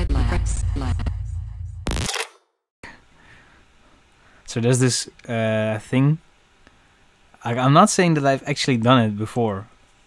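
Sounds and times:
electronic noisy burst: 1.9s - 2.4s.

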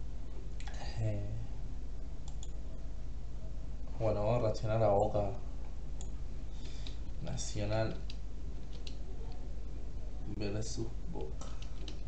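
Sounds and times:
steady low hum: 0.0s - 12.0s
computer mouse clicking: 2.2s - 2.6s, 7.9s - 9.4s, 11.2s - 12.0s.

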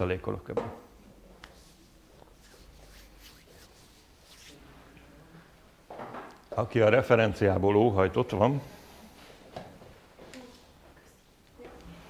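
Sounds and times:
faint rustles and handling noises: 1.0s - 6.6s, 8.6s - 12.0s.

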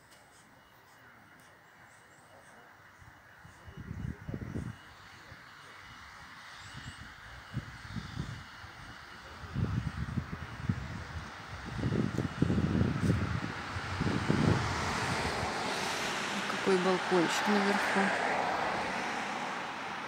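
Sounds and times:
rushing background noise: 0.0s - 20.0s
wind buffeting microphone: 3.5s - 4.9s, 6.6s - 17.3s.

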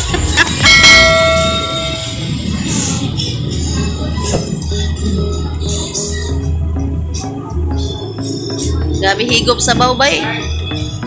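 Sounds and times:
bell-like chime: 0.6s - 2.6s.

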